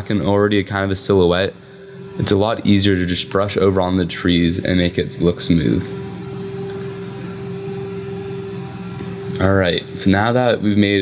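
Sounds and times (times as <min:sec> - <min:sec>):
steady droning hum: 0:00.0 - 0:11.0.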